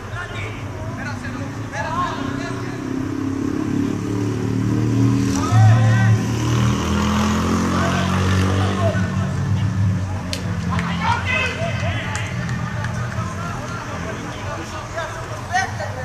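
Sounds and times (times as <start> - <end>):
players shouting: 5.3 - 9.5, 10.4 - 16.0.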